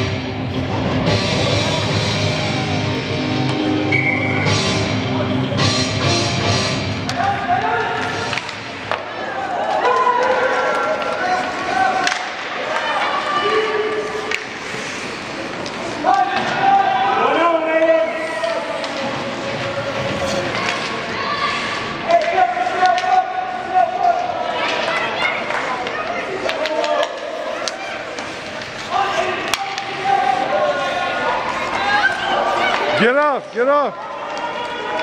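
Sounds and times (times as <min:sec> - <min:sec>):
spectators yelling and cheering: 0:01.1 - 0:05.8, 0:06.5 - 0:35.0
hockey sticks and puck knocking: 0:07.0 - 0:09.3, 0:10.0 - 0:13.2, 0:17.8 - 0:21.0, 0:22.1 - 0:23.3, 0:24.0 - 0:30.2.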